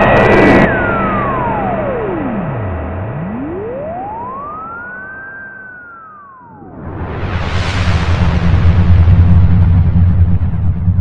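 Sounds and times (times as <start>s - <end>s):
low steady drone: 0.0s - 11.0s
synthesized tone sweeping up and down: 0.0s - 11.0s
loud rushing noise: 6.8s - 11.0s.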